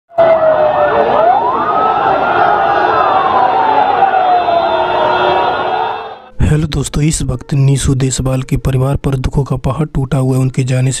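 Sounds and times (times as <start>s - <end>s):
ambulance siren wailing: 0.1s - 6.3s.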